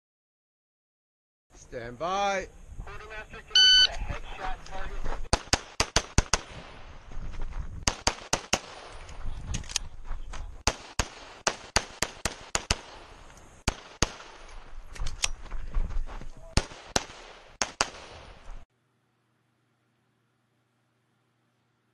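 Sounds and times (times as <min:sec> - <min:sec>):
rapid pistol shots: 0:05.3 - 0:06.9, 0:07.8 - 0:09.0, 0:10.6 - 0:14.6, 0:16.6 - 0:18.5.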